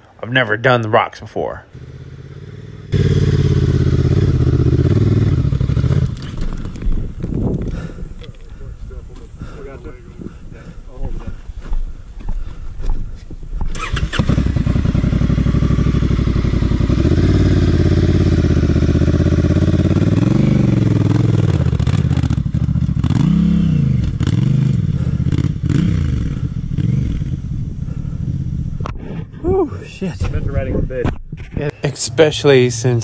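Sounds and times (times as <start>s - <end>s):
motorcycle engine starting: 1.8s - 8.3s, 13.6s - 29.2s
motorcycle throttle blips: 1.8s - 8.6s, 13.6s - 29.1s.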